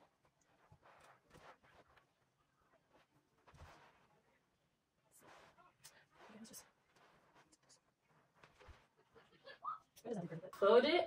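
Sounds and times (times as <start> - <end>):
soft rustles of fabric: 0.0 - 10.8.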